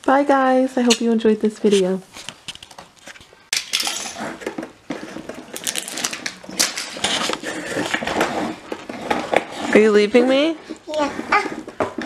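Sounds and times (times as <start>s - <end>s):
plastic toy truck clattering: 3.6s - 9.8s.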